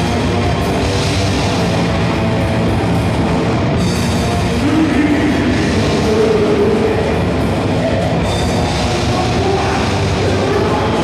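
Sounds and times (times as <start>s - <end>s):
distorted guitars: 0.0s - 11.0s
drums: 0.0s - 11.0s.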